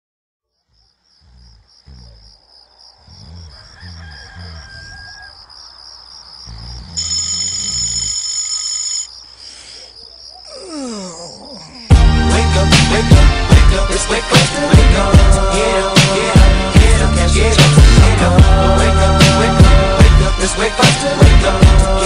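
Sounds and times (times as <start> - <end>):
crickets chirping: 0.4 - 12.0
rooster crowing: 3.2 - 6.0
person calling out: 10.4 - 11.9
low bass notes: 11.9 - 14.1, 16.3 - 20.6.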